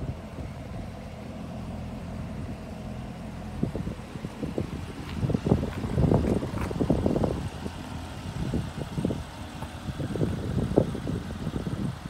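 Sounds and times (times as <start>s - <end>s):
steady low rumble: 0.0s - 12.0s
wind buffeting microphone: 2.1s - 12.0s.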